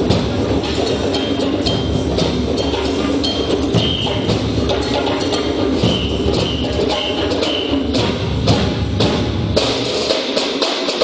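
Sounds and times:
percussion ensemble drumming: 0:00.0 - 0:11.0.

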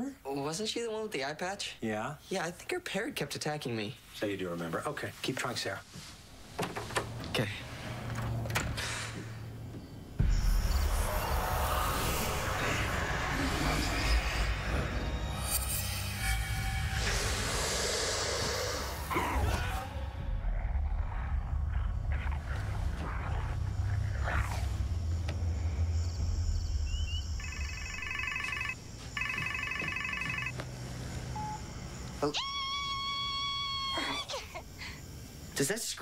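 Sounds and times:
dark background music: 0:07.1 - 0:29.4
high steady screech: 0:10.3 - 0:20.1
phone ringing: 0:27.4 - 0:30.6.

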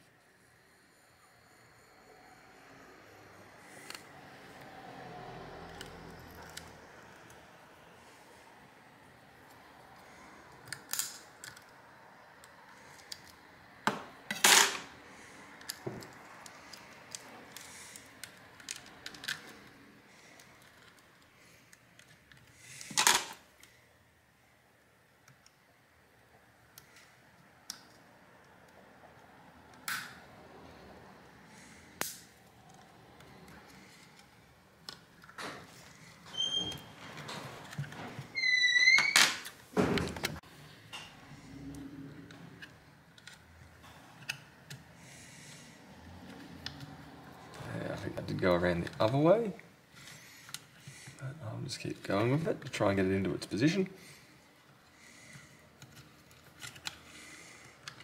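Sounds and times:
plastic parts squeaking: 0:35.3 - 0:39.6.

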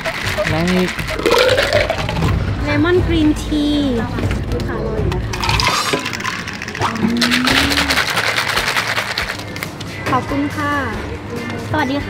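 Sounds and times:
ice rattling in a shaker cup: 0:00.0 - 0:02.3, 0:05.3 - 0:09.7.

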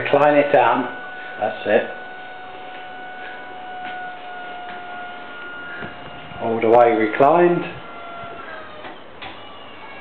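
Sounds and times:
armchair actuator motor whine: 0:00.0 - 0:10.0.

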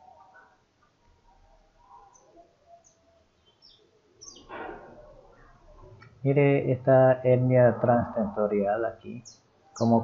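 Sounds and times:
faint bird chirps: 0:00.0 - 0:06.4, 0:07.7 - 0:10.0.

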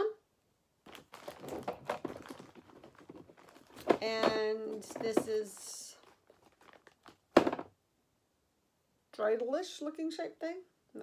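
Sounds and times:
plastic bag crinkling: 0:00.8 - 0:07.7.

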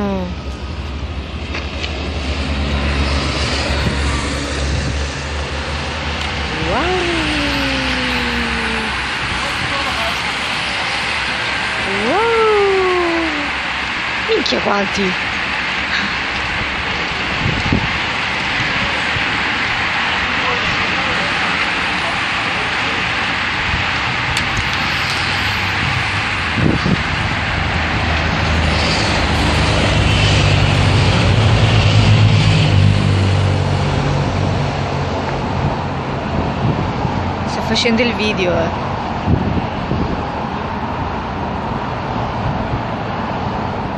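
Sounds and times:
cyclists passing: 0:00.0 - 0:43.9
vehicle engine rumble passing: 0:00.0 - 0:43.9
outdoor hiss: 0:24.4 - 0:26.6.

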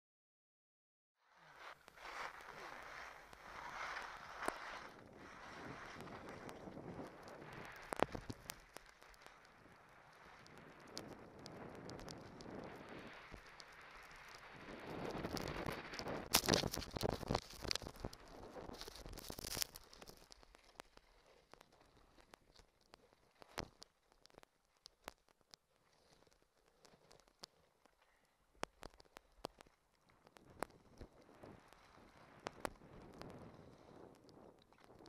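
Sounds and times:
skis scraping over snow: 0:01.4 - 0:22.2
wind on microphone: 0:01.7 - 0:08.6, 0:09.5 - 0:19.7, 0:30.4 - 0:35.0.

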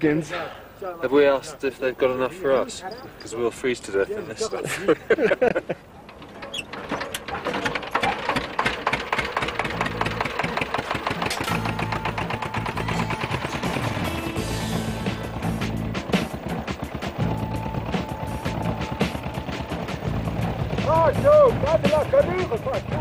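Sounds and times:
diesel engine chugging: 0:05.6 - 0:23.0.

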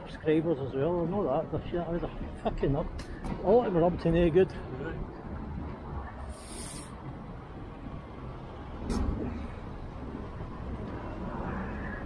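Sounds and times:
brief high hiss: 0:06.3 - 0:07.0.

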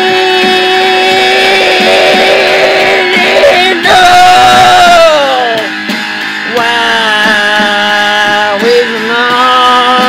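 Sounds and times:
rock backing band: 0:00.0 - 0:10.0
electric guitar sustained note: 0:01.0 - 0:05.6.

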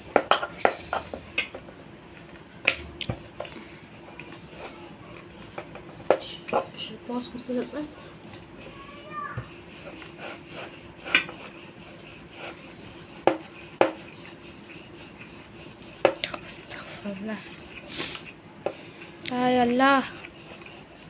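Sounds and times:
rolling pin rubbing on dough: 0:00.0 - 0:21.0
rolling pin clacking on board: 0:13.2 - 0:14.0.

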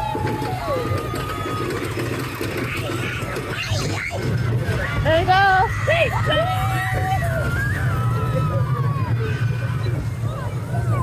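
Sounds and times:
roller coaster rumbling on track: 0:00.0 - 0:11.0.

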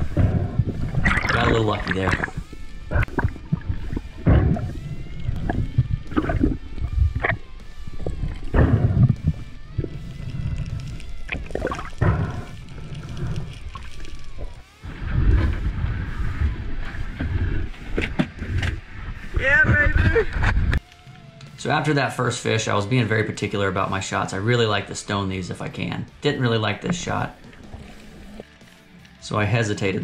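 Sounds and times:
quiet background music: 0:00.0 - 0:20.1, 0:20.8 - 0:30.0
water sloshing and rushing: 0:00.0 - 0:20.8, 0:25.5 - 0:28.9.

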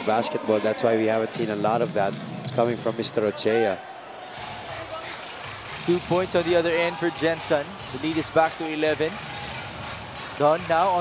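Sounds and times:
arena crowd murmur: 0:03.3 - 0:11.0.

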